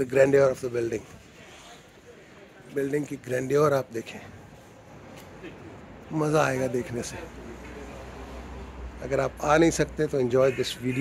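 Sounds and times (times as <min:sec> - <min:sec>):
man speaking: 0:00.0 - 0:01.1, 0:06.1 - 0:07.6, 0:09.0 - 0:11.0.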